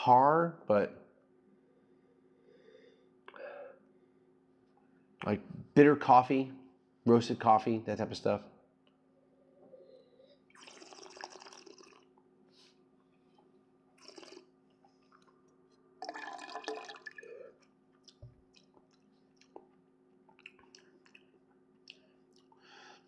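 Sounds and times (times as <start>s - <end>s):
wet slurping of wine: 10.6s - 12.1s, 14.0s - 14.5s
small liquid clicks: 16.2s - 22.6s.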